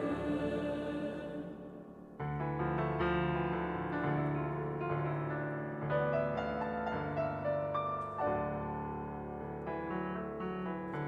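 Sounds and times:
women's choir singing: 0.0s - 2.2s
piano accompaniment: 0.0s - 11.0s.

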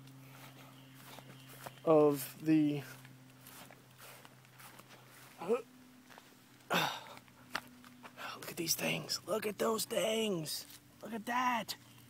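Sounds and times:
footsteps on grass: 0.0s - 9.3s, 10.3s - 11.0s
steady low hum: 0.0s - 12.0s.

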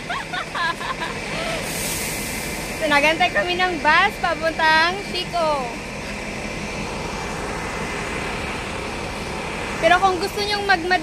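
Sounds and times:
faint high whine: 0.0s - 11.0s
traffic hum: 0.0s - 11.0s.

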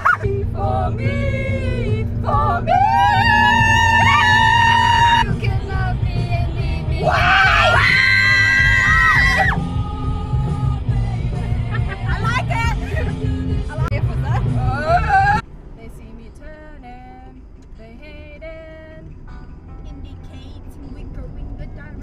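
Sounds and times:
women singing along with music: 0.0s - 15.4s
moving car hum: 0.0s - 22.0s.

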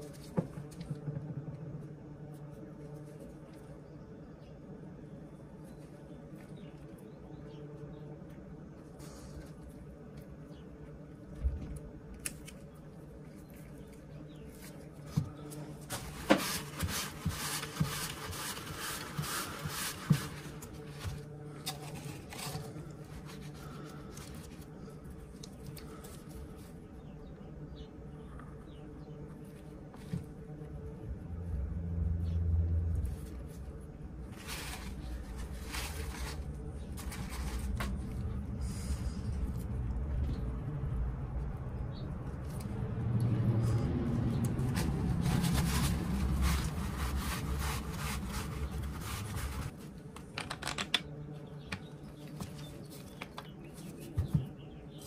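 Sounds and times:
low rumble: 30.7s - 49.7s.

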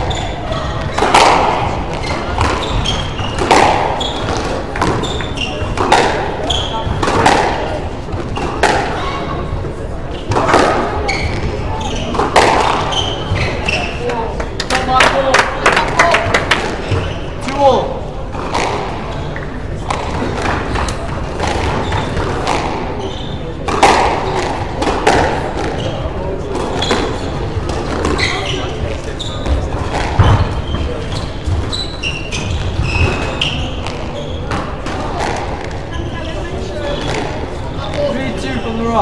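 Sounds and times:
squash ball knocks: 1.0s - 5.0s, 5.7s - 6.4s, 7.0s - 9.0s, 12.1s - 12.9s, 23.6s - 25.9s, 29.4s - 30.9s.

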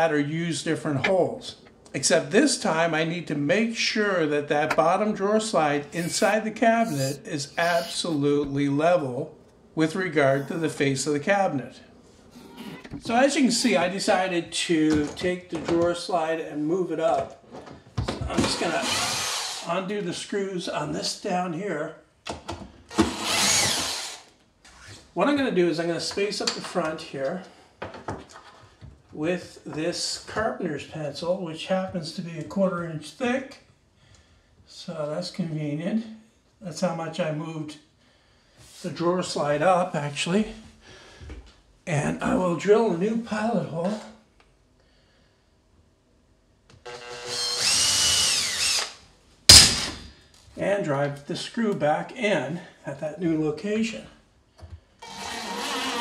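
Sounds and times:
cordless drill running: 6.0s - 8.2s, 18.8s - 19.7s, 23.0s - 24.3s, 46.9s - 49.0s, 55.0s - 56.0s.

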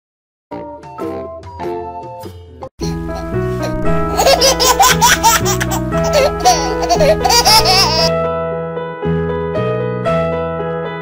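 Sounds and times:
light children's music: 0.5s - 11.0s
baby giggling: 2.8s - 8.1s.

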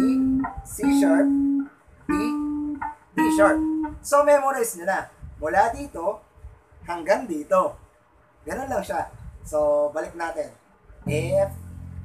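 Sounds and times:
electric bass notes plucked: 0.0s - 4.2s, 11.0s - 12.0s.

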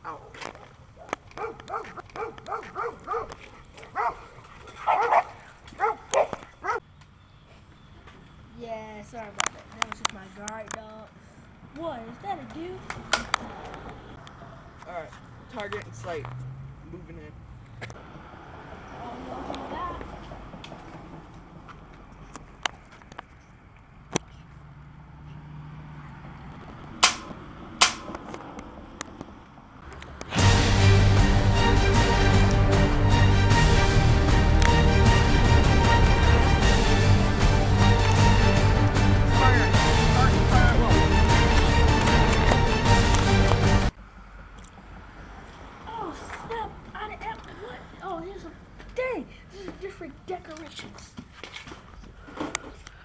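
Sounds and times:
dog barking: 0.0s - 0.4s, 1.0s - 3.4s, 4.0s - 6.8s
dart blaster snaps: 27.0s - 28.1s.

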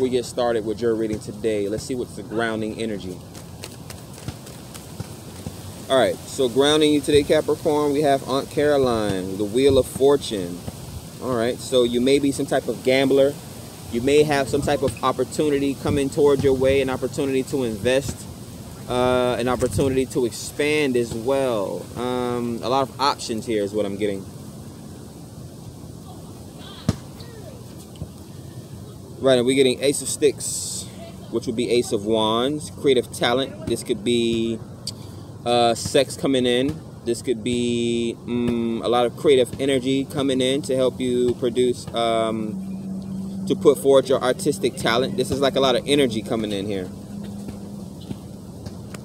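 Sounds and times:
man speaking: 0.0s - 3.2s, 5.9s - 18.3s, 18.9s - 24.3s, 29.2s - 42.6s, 43.4s - 47.0s
background hiss: 0.0s - 49.0s
outdoor background noise: 0.0s - 49.0s
cards being shuffled: 3.2s - 5.6s.

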